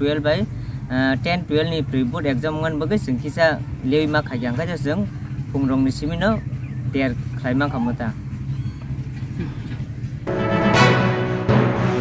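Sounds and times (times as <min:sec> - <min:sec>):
low outdoor rumble: 0:00.0 - 0:10.3.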